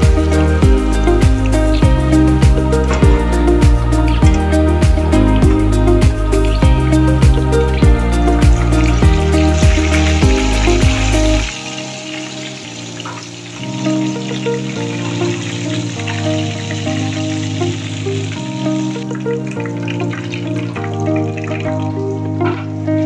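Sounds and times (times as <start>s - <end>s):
background music: 0.0s - 23.0s
food sizzling in oil: 0.0s - 23.0s.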